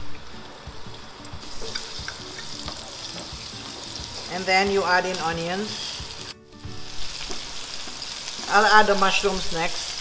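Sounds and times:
garlic frying in hot oil: 0:00.0 - 0:10.0.

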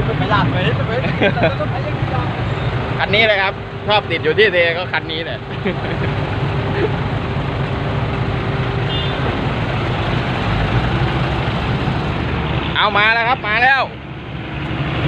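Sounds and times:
diesel truck engines idling: 0:00.0 - 0:15.0.

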